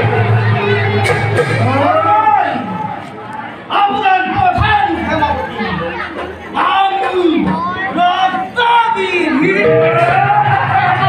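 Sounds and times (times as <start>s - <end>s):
audience murmur: 0.0s - 11.0s.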